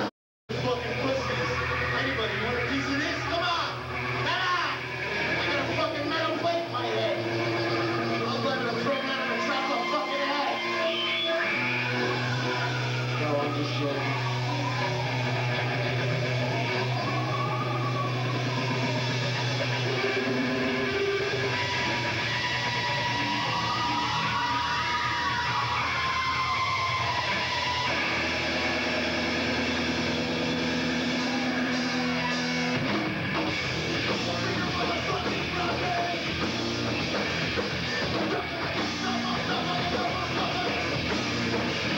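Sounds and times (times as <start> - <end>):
live rock band playing: 0.0 - 41.9.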